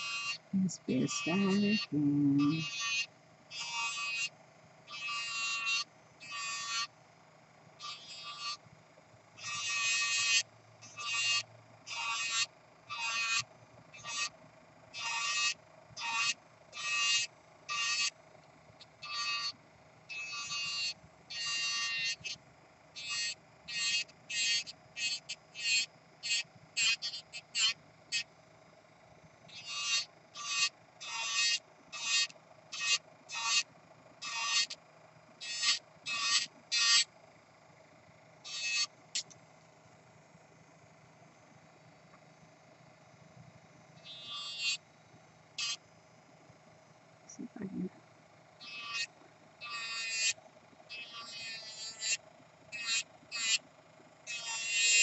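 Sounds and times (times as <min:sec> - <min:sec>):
nail drill grinding whines: 0:00.0 - 0:07.0, 0:07.7 - 0:08.7, 0:09.4 - 0:28.3, 0:29.5 - 0:37.1, 0:38.4 - 0:39.4, 0:43.9 - 0:44.8, 0:45.5 - 0:45.8, 0:48.6 - 0:55.0
nail drill running hum: 0:00.0 - 0:47.3, 0:48.0 - 0:55.0.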